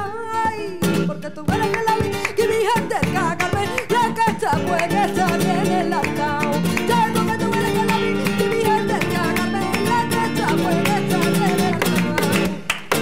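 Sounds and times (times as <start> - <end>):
flamenco guitar: 0.0 - 13.0
woman singing flamenco: 0.0 - 13.0.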